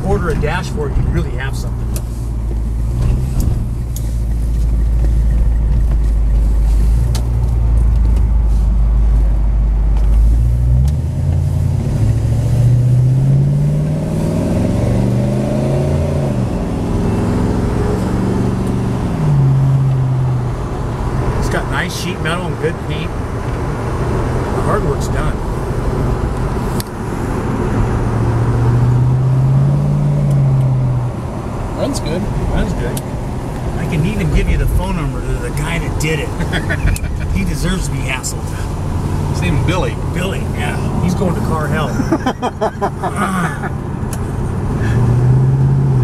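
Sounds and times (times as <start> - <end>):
car engine accelerating: 0.0 - 46.0
road noise: 0.0 - 46.0.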